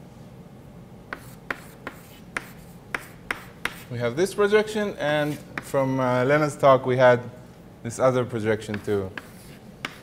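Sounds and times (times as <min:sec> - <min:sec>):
low room hum: 0:00.0 - 0:10.0
chalk tapping on blackboard: 0:01.1 - 0:03.9, 0:05.3 - 0:05.7, 0:08.7 - 0:10.0.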